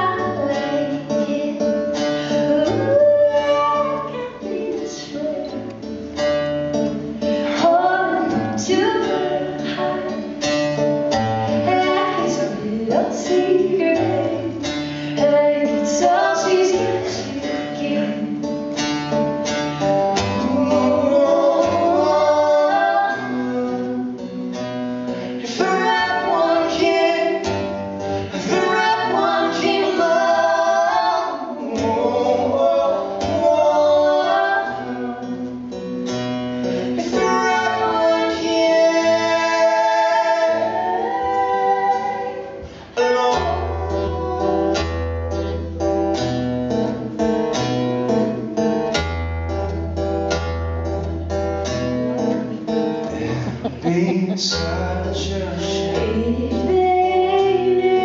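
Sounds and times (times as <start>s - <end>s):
woman singing: 0.0s - 6.0s, 7.4s - 10.4s, 11.2s - 18.5s, 20.4s - 24.1s, 25.4s - 27.7s, 28.3s - 35.6s, 36.9s - 45.0s, 55.9s - 58.0s
strummed acoustic guitar: 0.0s - 58.0s
man singing: 20.2s - 24.6s, 28.3s - 35.7s, 36.8s - 41.5s, 53.1s - 57.8s.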